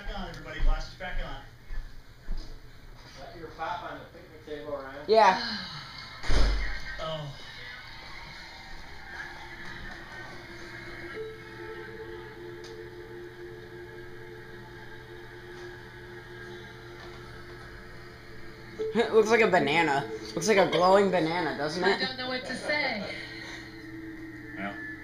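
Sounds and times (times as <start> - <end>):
loud thump: 6.2 - 6.7
soft background music: 7.1 - 25.0.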